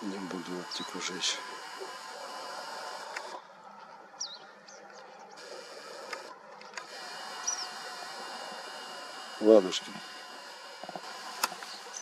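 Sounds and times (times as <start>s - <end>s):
steady outdoor hiss: 0.0s - 12.0s
high bird chirps: 4.2s - 5.6s, 7.3s - 7.9s, 11.6s - 12.0s.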